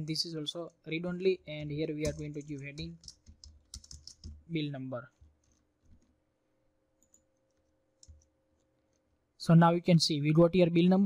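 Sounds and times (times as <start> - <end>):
computer keyboard and mouse clicks: 2.0 - 4.5, 7.0 - 9.0.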